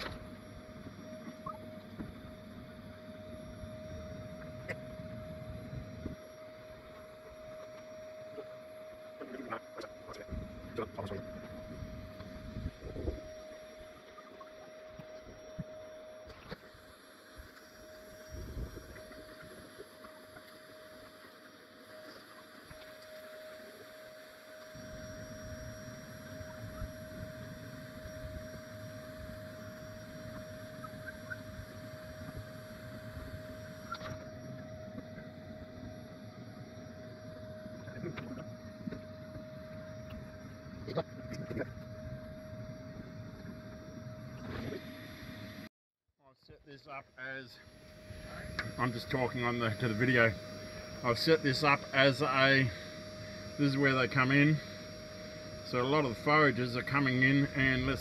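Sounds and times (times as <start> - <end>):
vacuum motor whining: 0.0 - 45.7, 47.5 - 58.0
low rumble of wind: 11.5 - 13.3.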